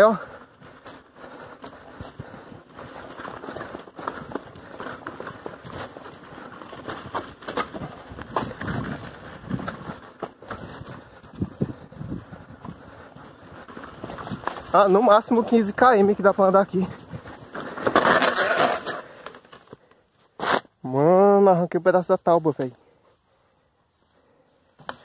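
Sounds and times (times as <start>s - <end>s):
bicycle rattling and clicking: 0.1s - 19.8s.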